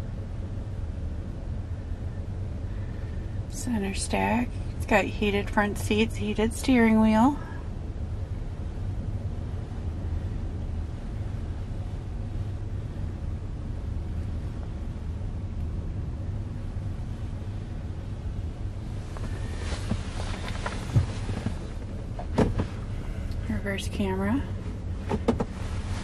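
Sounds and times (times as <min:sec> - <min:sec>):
car engine idling: 0:00.0 - 0:26.0.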